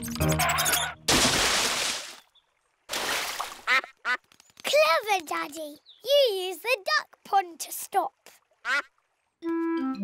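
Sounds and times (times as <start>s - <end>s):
cartoon splash into water: 1.1s - 2.2s
ducks quacking: 3.6s - 4.3s, 8.6s - 8.9s.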